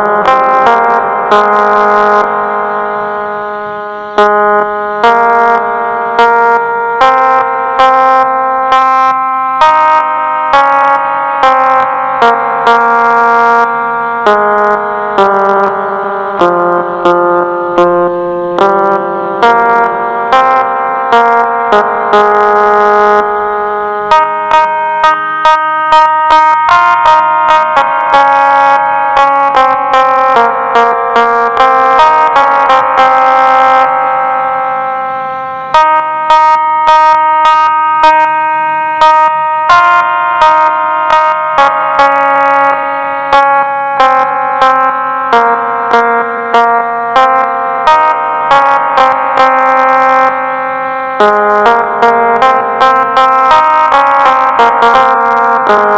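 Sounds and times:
electronic keyboard melody: 0.0 - 55.9.

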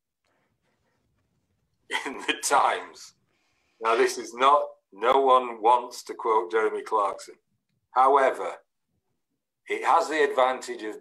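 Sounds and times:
man speaking: 1.9 - 3.2, 3.8 - 8.7, 9.7 - 11.0.

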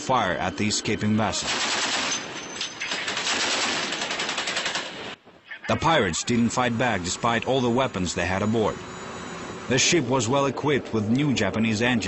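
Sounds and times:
machine gun firing bursts: 1.4 - 5.2.

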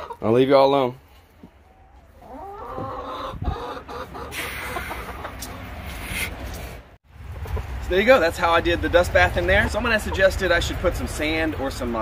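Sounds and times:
hens clucking: 0.0 - 6.6, 7.2 - 8.3, 9.3 - 12.0.

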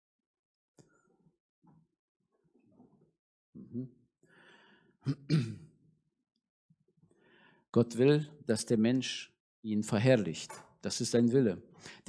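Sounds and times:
breath into microphone: 4.3 - 5.0, 7.1 - 7.7, 11.8 - 12.0.

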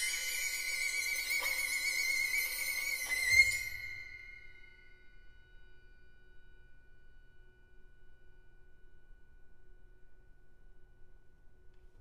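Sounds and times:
violin high note with vibrato: 0.0 - 5.0.

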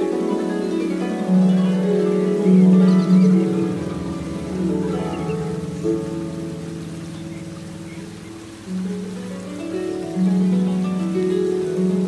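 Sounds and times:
flowing water rushing: 0.0 - 12.0
harp notes plucked: 0.0 - 12.0.

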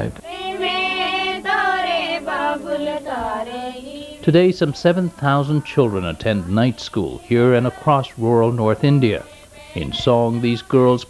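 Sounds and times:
man speaking: 0.0 - 0.2, 4.2 - 11.0
girls singing together: 0.0 - 11.0.

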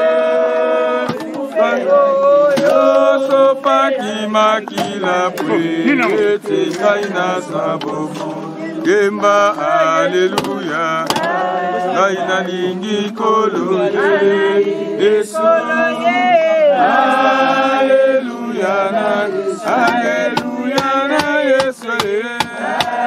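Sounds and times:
group singing a hymn: 0.0 - 23.0.

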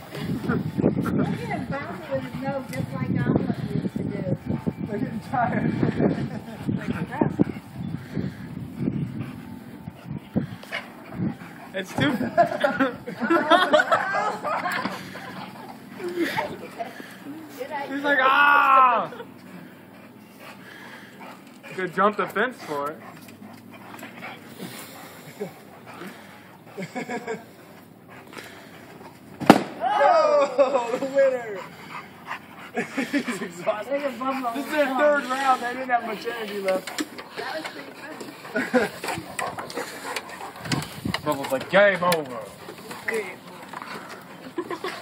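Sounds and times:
dogs growling in play: 31.6 - 41.8.

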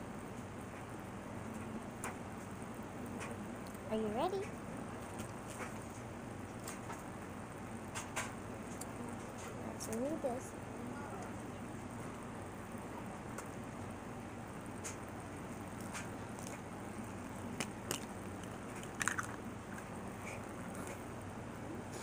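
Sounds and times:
steady low hum: 0.0 - 22.0
bites: 17.6 - 21.0.

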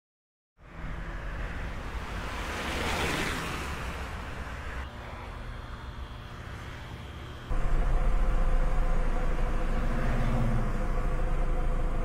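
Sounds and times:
steady rushing noise: 0.6 - 12.0
low rumble: 7.5 - 12.0.

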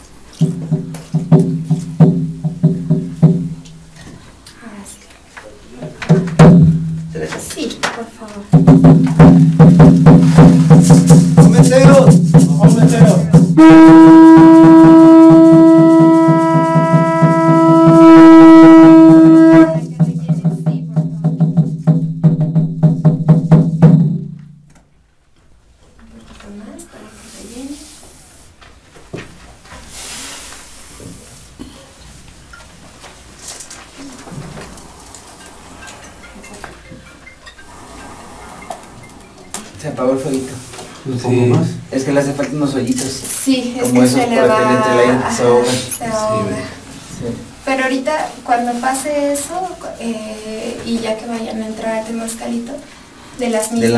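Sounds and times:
long blown horn note: 13.6 - 19.9
low drone with fast beating: 34.1 - 40.3.

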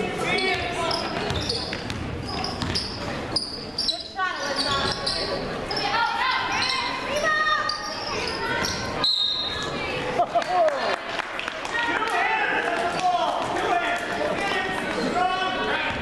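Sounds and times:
players and spectators voices: 0.0 - 16.0.

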